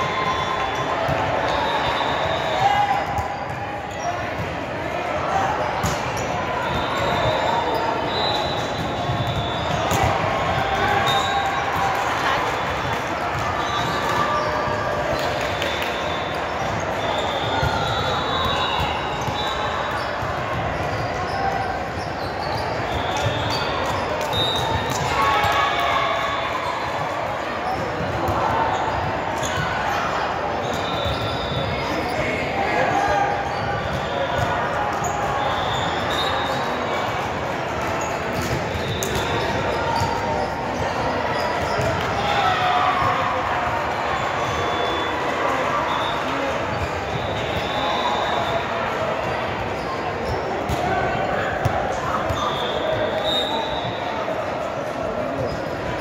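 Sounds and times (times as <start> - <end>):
sneakers squeaking: 0.0 - 4.7, 5.3 - 43.3, 43.9 - 56.0.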